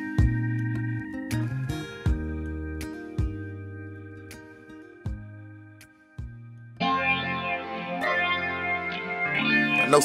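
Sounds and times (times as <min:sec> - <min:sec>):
soul music with band and guitar: 0:00.0 - 0:10.0.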